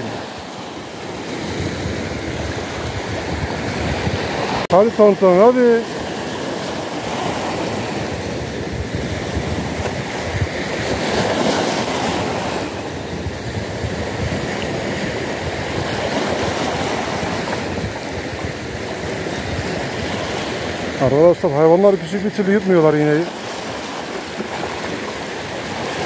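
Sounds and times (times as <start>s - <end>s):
waves breaking over rocks: 0.0s - 26.0s.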